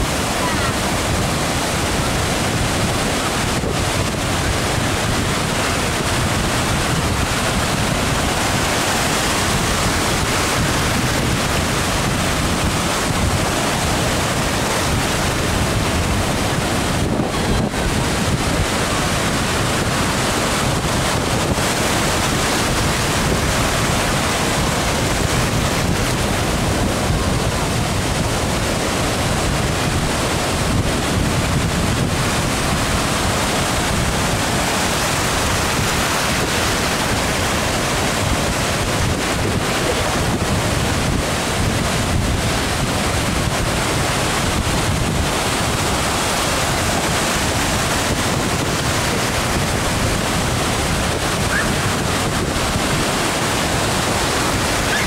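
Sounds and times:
ocean surf breaking: 0.0 - 55.0
wind buffeting microphone: 0.0 - 55.0.

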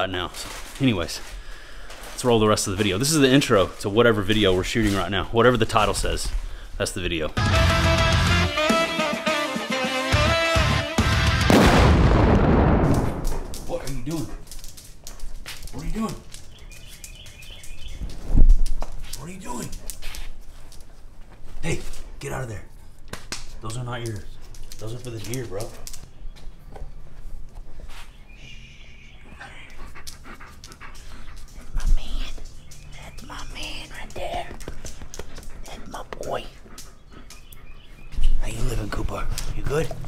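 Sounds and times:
dog panting: 13.8 - 17.9, 29.1 - 40.0
birds chirping: 15.2 - 18.3, 23.6 - 40.0.

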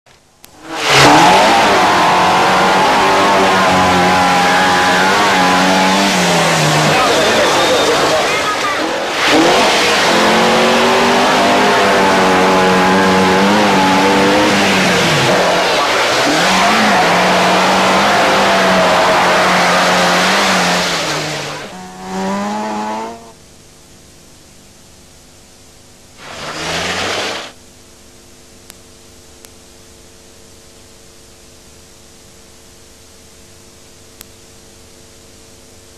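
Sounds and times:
rally car engine revving: 0.5 - 23.4, 26.2 - 27.6.

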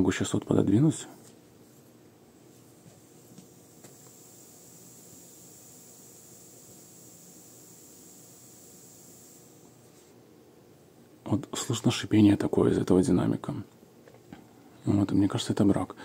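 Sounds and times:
speaker hiss: 0.0 - 16.0.

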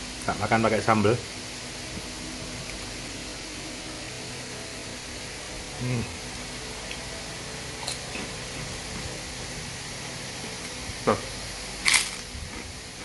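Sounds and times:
background hiss: 0.0 - 13.0
person eating: 5.7 - 7.1, 7.7 - 9.2, 11.8 - 13.0.

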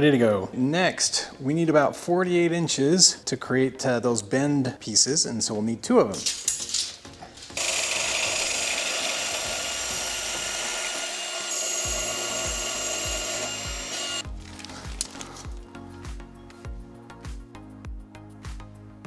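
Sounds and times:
band saw cutting steel: 7.6 - 14.2
background music with bass beat: 14.2 - 19.0.

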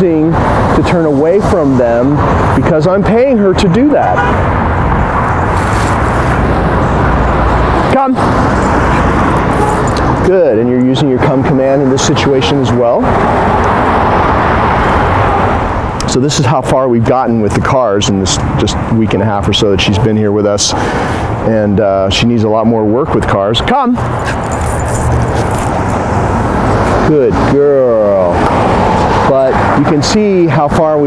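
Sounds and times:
cars passing: 0.0 - 31.0
engine and tyre noise: 0.0 - 31.0
car driving past: 4.3 - 10.3.

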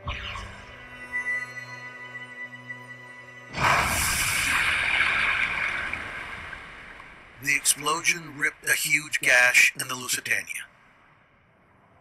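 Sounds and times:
explosion with rushing water: 3.5 - 7.3.

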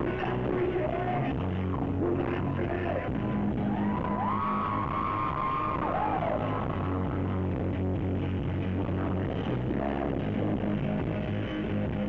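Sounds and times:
low bass notes: 0.0 - 12.0.

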